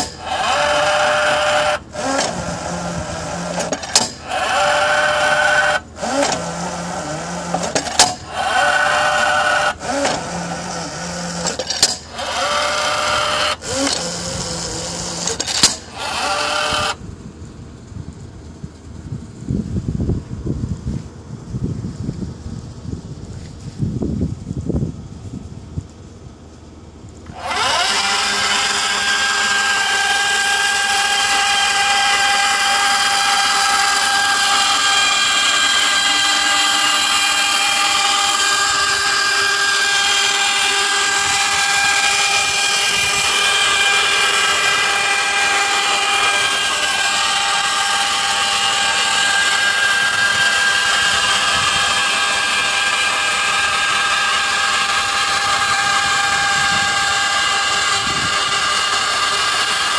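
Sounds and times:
roller chain and sprockets running: 0:00.0 - 0:06.5, 0:27.2 - 0:59.9
electric motor whining: 0:00.0 - 0:17.0, 0:27.2 - 0:59.9.

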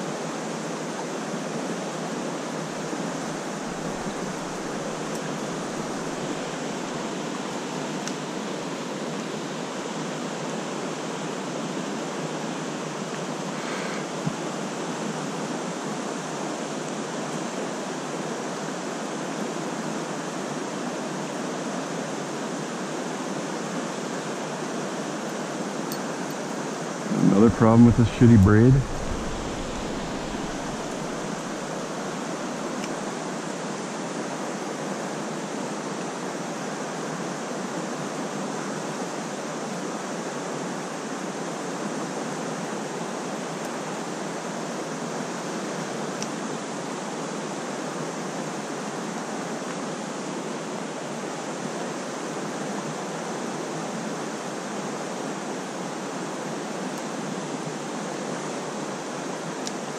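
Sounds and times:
stream water flowing: 0:02.2 - 0:09.6.

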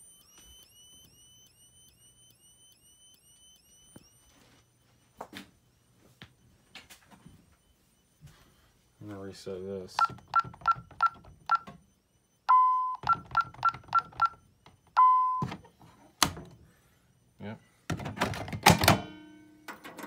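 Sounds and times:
longer lower beep: 0:00.0 - 0:16.0
alarm keypad beeps: 0:00.0 - 0:17.8.

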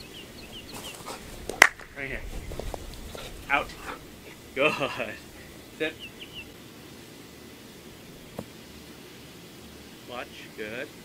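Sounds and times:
small bird chirping: 0:00.0 - 0:01.2, 0:02.0 - 0:06.6
sharp crack: 0:01.4 - 0:02.1.

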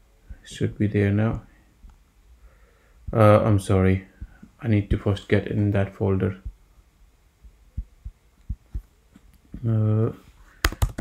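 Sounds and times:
muffled keyboard keystrokes: 0:10.6 - 0:11.0.

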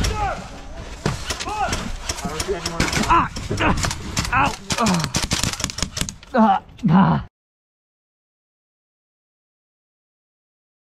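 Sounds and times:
people shouting: 0:00.0 - 0:00.7, 0:01.3 - 0:05.2, 0:06.3 - 0:07.3
airsoft guns firing: 0:01.2 - 0:06.2.

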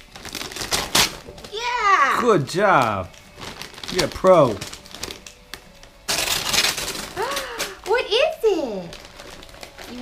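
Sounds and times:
wrapping paper tearing: 0:00.0 - 0:10.0
woman speaking: 0:07.8 - 0:08.9.

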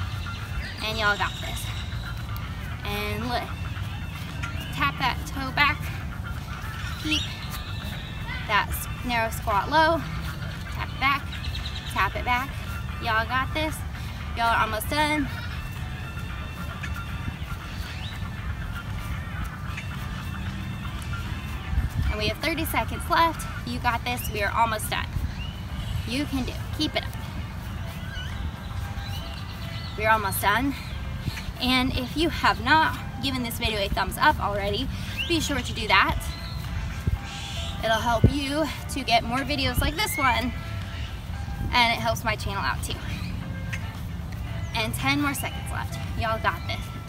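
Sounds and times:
steady low rumble: 0:00.0 - 0:39.8
bird chirping: 0:00.0 - 0:47.0.

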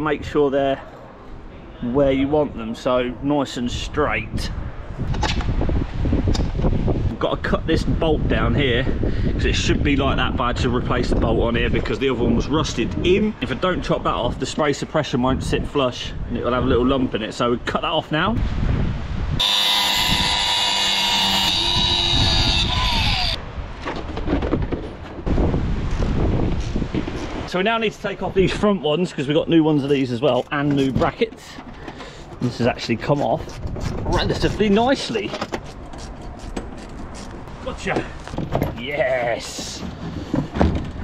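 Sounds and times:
wind buffeting microphone: 0:03.8 - 0:19.4, 0:21.2 - 0:28.8, 0:32.1 - 0:41.0
angle grinder cutting steel: 0:19.4 - 0:23.4.

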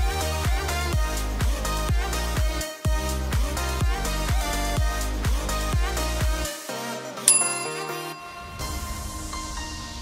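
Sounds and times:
background music: 0:00.0 - 0:10.0
timer bell chime: 0:07.3 - 0:09.2.

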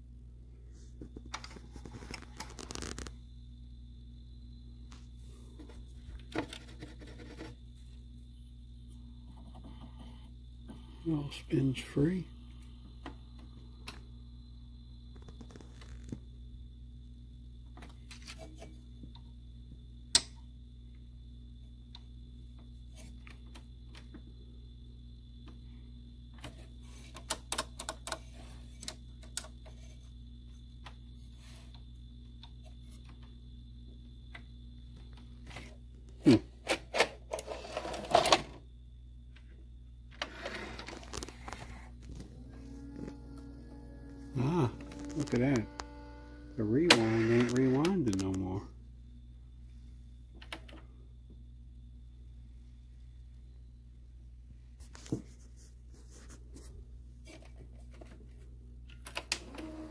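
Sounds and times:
video recorder humming: 0:00.0 - 0:53.8, 0:56.1 - 0:59.9
tape mechanism clicks and clunks: 0:42.1 - 0:48.4.

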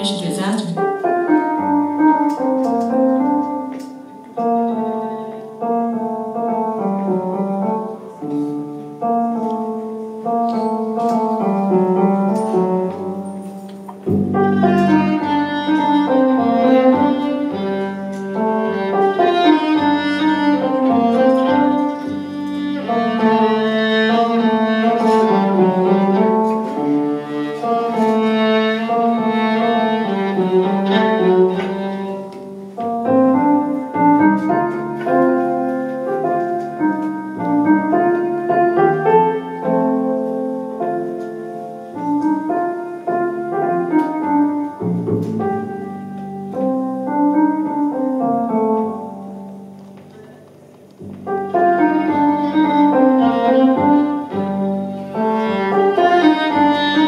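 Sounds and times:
piano chords: 0:00.0 - 0:57.0
bowed violin: 0:02.3 - 0:06.0, 0:14.1 - 0:35.4, 0:51.5 - 0:57.0.

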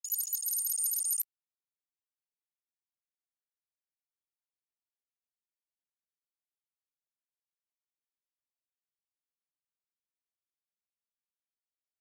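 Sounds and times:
high-pitched electronic ringing: 0:00.0 - 0:01.2.

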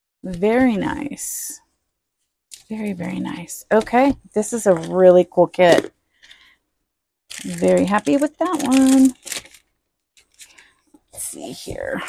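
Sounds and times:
paper and plastic rustling: 0:07.3 - 0:11.0.

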